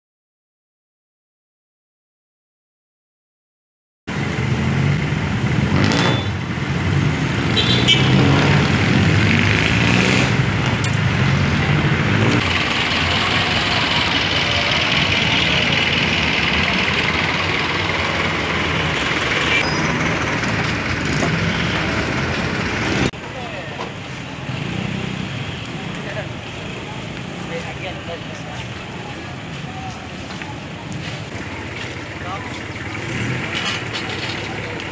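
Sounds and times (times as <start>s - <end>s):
vehicle engines running: 4.1s - 34.9s
people's voices: 10.8s - 34.9s.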